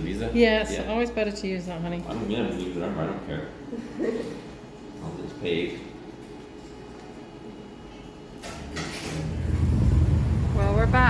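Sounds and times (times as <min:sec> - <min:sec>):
street traffic rumble: 0:09.2 - 0:11.0.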